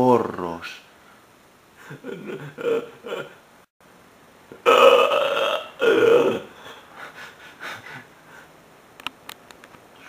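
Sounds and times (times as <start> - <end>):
person making drawn-out vocal sounds: 4.5 - 6.8.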